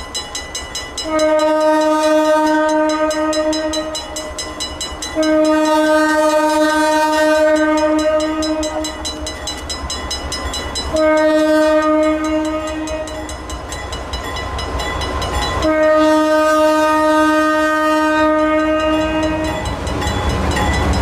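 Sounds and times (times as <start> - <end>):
low rumble of locomotive engines: 0.0 - 21.0
locomotive air horn blasts: 1.0 - 4.2, 5.2 - 9.1, 10.9 - 13.3, 15.6 - 19.6.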